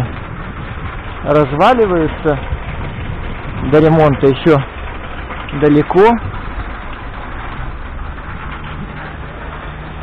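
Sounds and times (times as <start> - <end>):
low hum: 0.0 - 10.0
traffic running: 0.0 - 10.0.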